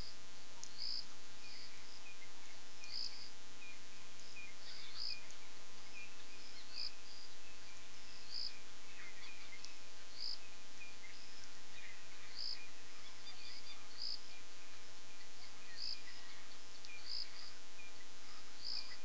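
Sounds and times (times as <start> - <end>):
birds: 0.0 - 19.0
high insect chirp: 0.0 - 19.0
steady faint hum: 0.0 - 19.0.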